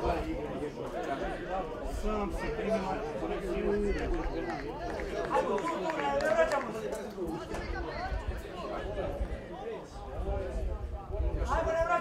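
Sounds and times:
indistinct chatter and calls: 0.0 - 12.0.

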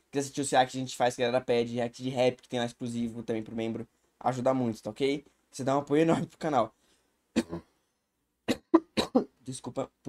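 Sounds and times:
man coughing: 7.4 - 7.7, 8.5 - 9.4.

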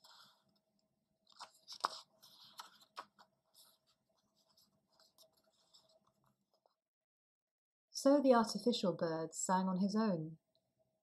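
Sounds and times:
book pages turning: 0.0 - 6.7.

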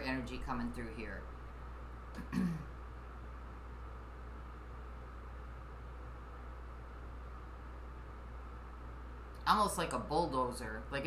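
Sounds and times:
steady low hum: 0.0 - 11.0
woman clearing throat: 2.2 - 2.8.

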